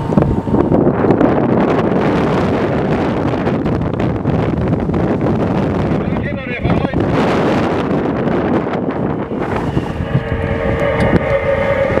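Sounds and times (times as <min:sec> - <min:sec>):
steady mechanical whine: 0:00.0 - 0:12.0
wind buffeting microphone: 0:00.0 - 0:12.0.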